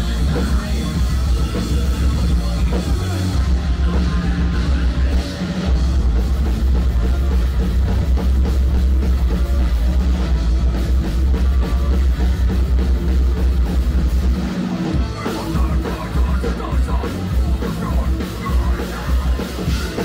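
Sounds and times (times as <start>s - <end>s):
bass guitar: 0.0s - 20.0s
distorted electric guitars: 0.0s - 20.0s
pounding drum kit: 0.0s - 20.0s.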